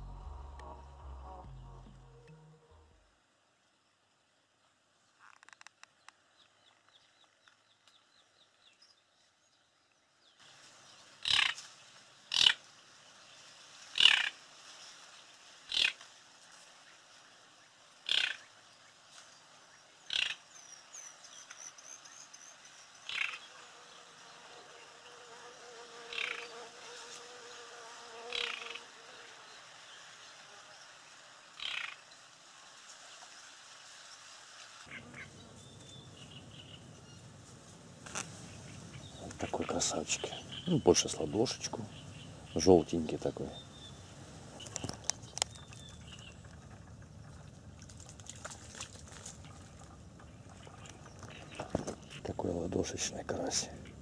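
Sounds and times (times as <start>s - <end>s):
faint outdoor hiss: 0.0s - 54.0s.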